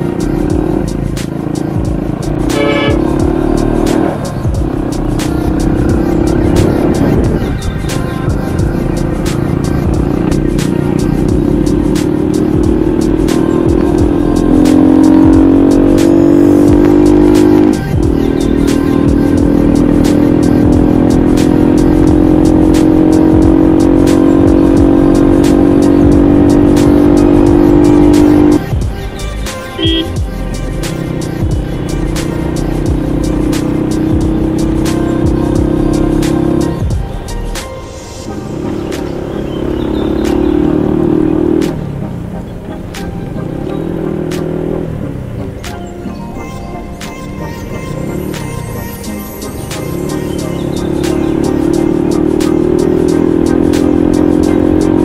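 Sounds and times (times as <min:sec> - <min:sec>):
small motorcycle engine running: 0:00.0 - 0:28.7, 0:29.8 - 0:37.0, 0:47.7 - 0:55.0
background music: 0:00.0 - 0:55.0.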